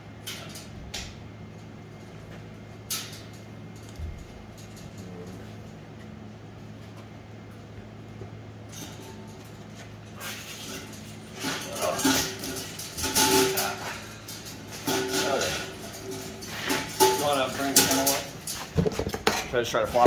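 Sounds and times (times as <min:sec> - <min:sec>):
steady low hum: 0:00.0 - 0:20.0
wire crate rattling: 0:10.2 - 0:20.0.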